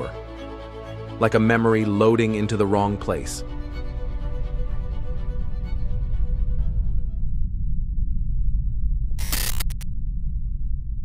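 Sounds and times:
low drone: 0:03.4 - 0:11.0
stuttering harsh static: 0:09.2 - 0:09.8.

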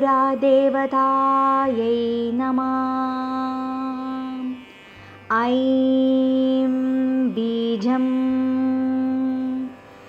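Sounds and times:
person chanting a mantra: 0:00.0 - 0:04.6, 0:05.3 - 0:09.8.

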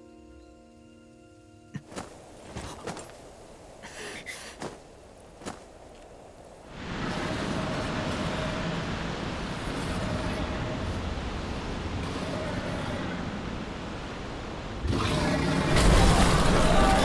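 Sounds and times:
rushing wind: 0:01.8 - 0:17.0.

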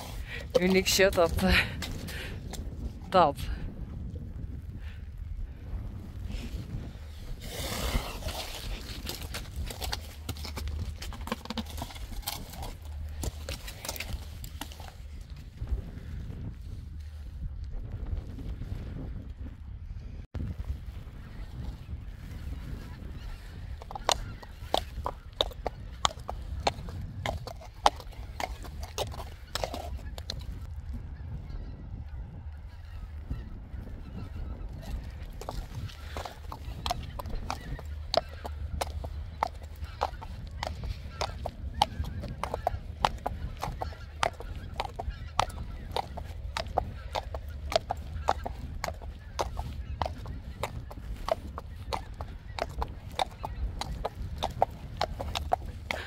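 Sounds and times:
steady low rumble: 0:00.0 - 0:56.0
birds calling: 0:32.7 - 0:56.0.

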